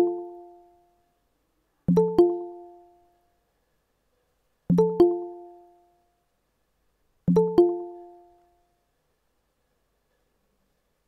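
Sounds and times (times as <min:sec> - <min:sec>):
electronic alert chime: 0:01.9 - 0:02.9, 0:04.7 - 0:05.8, 0:07.3 - 0:08.3.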